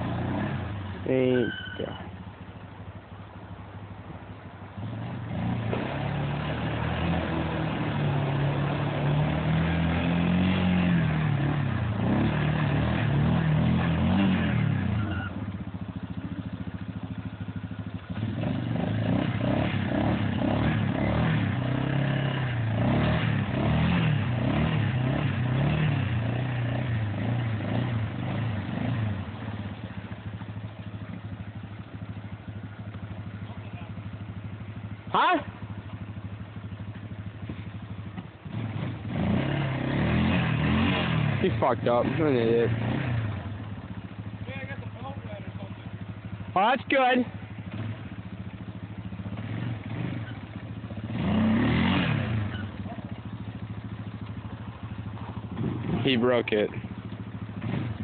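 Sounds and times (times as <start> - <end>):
atv engine revving: 0.0 - 58.0.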